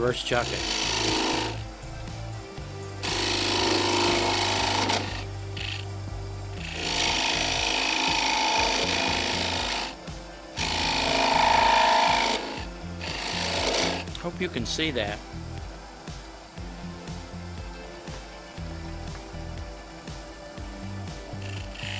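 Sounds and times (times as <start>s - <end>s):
lathe tool scraping wood: 0.0s - 1.7s, 3.0s - 5.9s, 6.6s - 10.0s, 10.6s - 14.7s, 21.4s - 21.9s.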